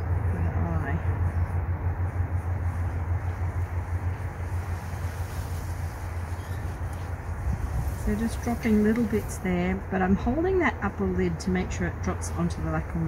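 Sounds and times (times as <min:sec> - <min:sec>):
steady low rumble: 0:00.0 - 0:13.0
even hiss: 0:02.5 - 0:09.8.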